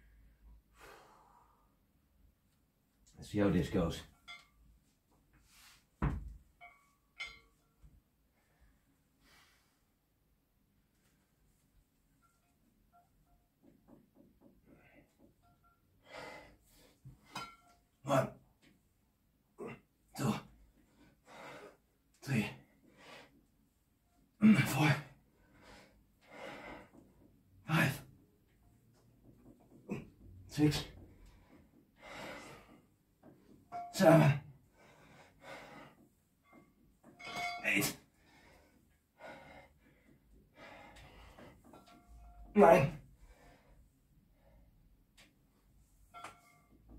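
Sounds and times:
man breathing hard: 0:16.0 - 0:17.2, 0:20.9 - 0:21.8, 0:25.4 - 0:27.0, 0:31.2 - 0:32.9, 0:34.7 - 0:36.1, 0:38.1 - 0:41.8.

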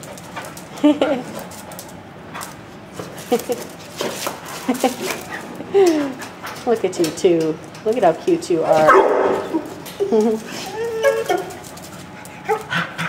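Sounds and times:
dogs whining and yipping: 0:09.4 - 0:13.0.

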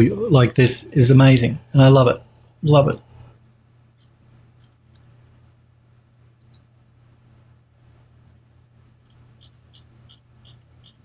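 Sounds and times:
steady low hum: 0:00.0 - 0:11.0
computer mouse clicks: 0:06.4 - 0:06.7, 0:09.0 - 0:11.0.

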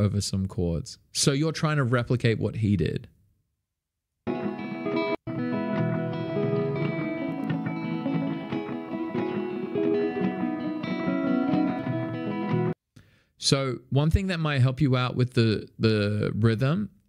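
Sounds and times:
guitar riff with delay: 0:04.3 - 0:12.8.

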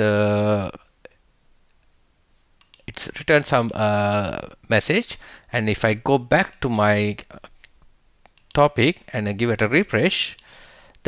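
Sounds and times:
man talking: 0:00.0 - 0:00.8, 0:02.9 - 0:07.5, 0:08.5 - 0:10.4
computer mouse click: 0:02.6 - 0:02.9.

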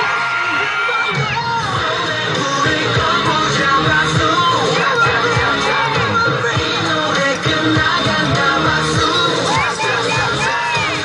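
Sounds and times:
crowd screaming and cheering: 0:00.0 - 0:11.0
dance music: 0:00.0 - 0:11.0.

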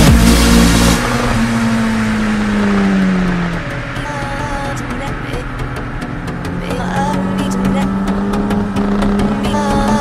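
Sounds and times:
motorcycle engine at high revs: 0:00.0 - 0:10.0.

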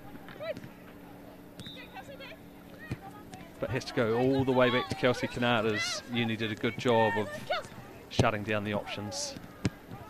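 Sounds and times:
distant shouts of footballers: 0:00.0 - 0:10.0.

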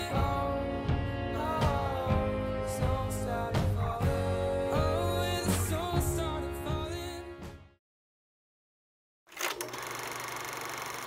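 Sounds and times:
small machine clattering and humming: 0:09.3 - 0:11.0.

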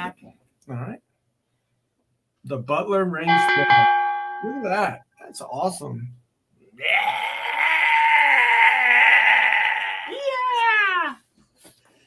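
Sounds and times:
person shouting wooo: 0:06.8 - 0:11.2.

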